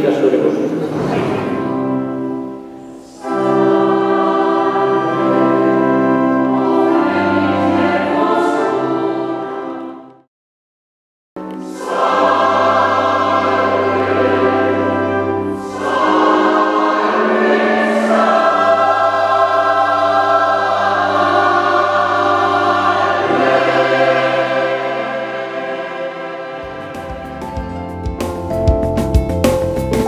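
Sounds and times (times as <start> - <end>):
choir singing a hymn: 0.0 - 10.3, 11.5 - 28.0.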